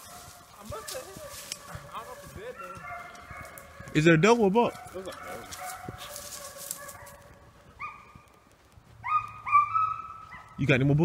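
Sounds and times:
hounds baying: 0.0s - 8.4s, 9.0s - 10.7s.

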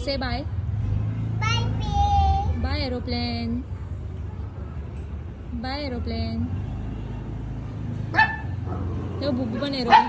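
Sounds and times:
dog barking: 8.1s - 9.0s.

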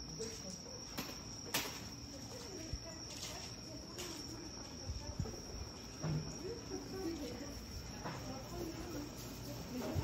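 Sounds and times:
crickets chirring: 0.0s - 10.0s
faint chatter of people: 0.0s - 10.0s.

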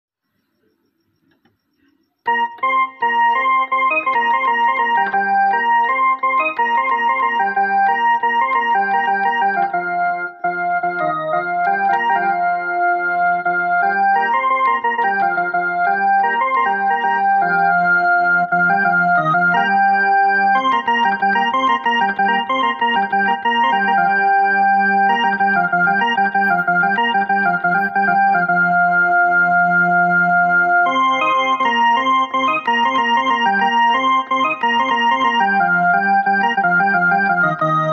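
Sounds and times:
electronic keyboard organ melody: 0.3s - 37.9s.

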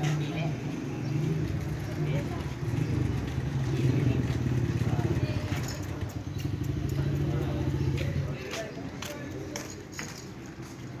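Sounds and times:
people talking: 0.0s - 0.8s, 1.7s - 10.2s
motorcycle engine idling: 0.8s - 8.5s.

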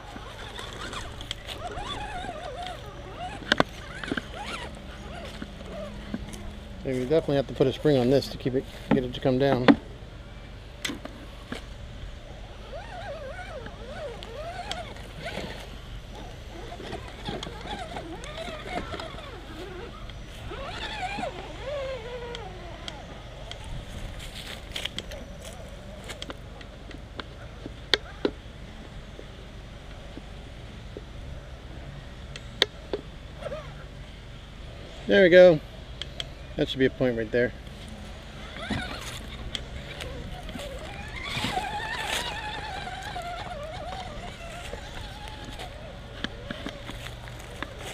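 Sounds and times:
small electric motor whining: 0.0s - 35.3s, 36.0s - 47.9s.

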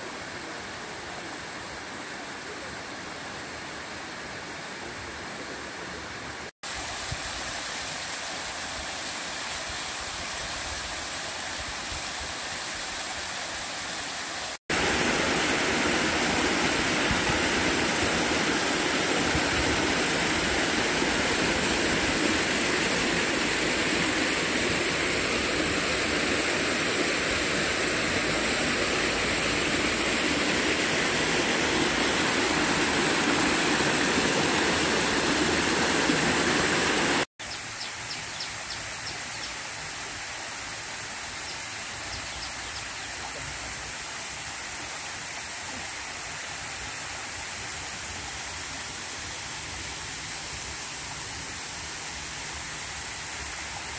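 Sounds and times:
water rushing over rocks: 6.2s - 37.3s.

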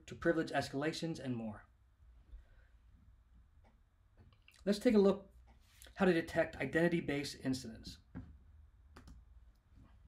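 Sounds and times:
computer mouse clicks: 8.9s - 9.2s.

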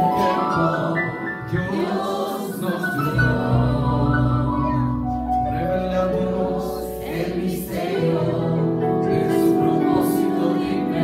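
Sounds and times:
group singing through microphones: 0.0s - 11.0s.

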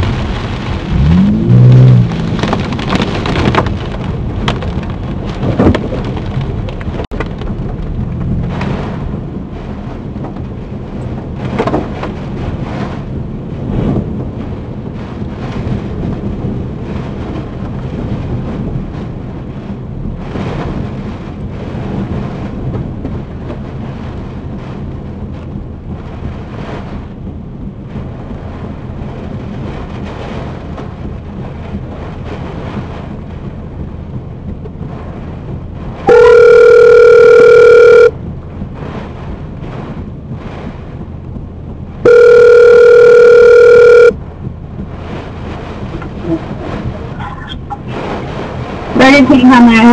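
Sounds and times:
wind and rain on car: 0.0s - 49.9s
phone ringback tone: 36.1s - 38.2s, 42.0s - 44.2s.

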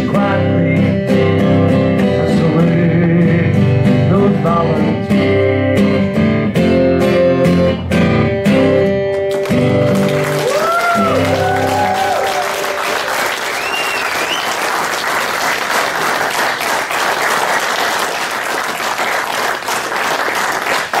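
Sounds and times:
guitar music: 0.0s - 14.2s
crowd applauding: 9.2s - 21.0s
whistles from crowd: 13.4s - 14.7s.

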